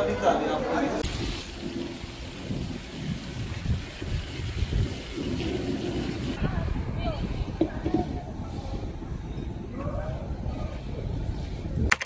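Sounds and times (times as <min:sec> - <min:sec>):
traffic rumble: 0:00.8 - 0:12.0
faint voices: 0:06.4 - 0:11.6.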